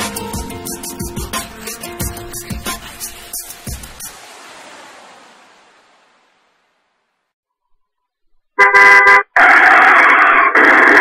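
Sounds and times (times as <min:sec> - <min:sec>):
car horn honking: 0:08.6 - 0:09.4.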